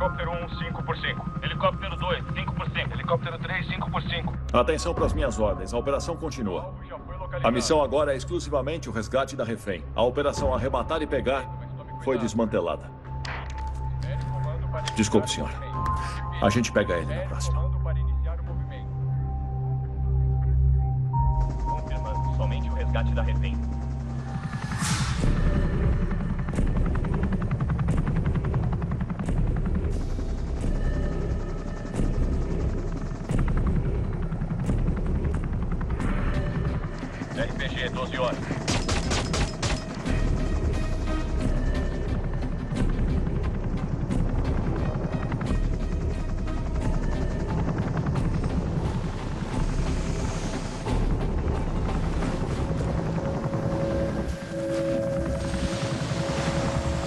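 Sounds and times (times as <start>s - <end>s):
helicopter rotor chop: 0.0s - 5.6s, 21.4s - 57.0s
dramatic film score: 0.0s - 57.0s.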